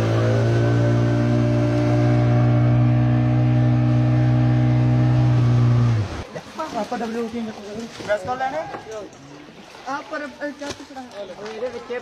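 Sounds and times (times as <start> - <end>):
loud steady low drone: 0.0 - 6.2.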